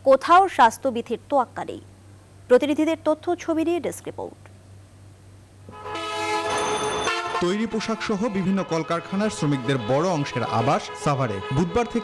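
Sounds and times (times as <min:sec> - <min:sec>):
vehicle horn long blast: 0:05.7 - 0:12.0.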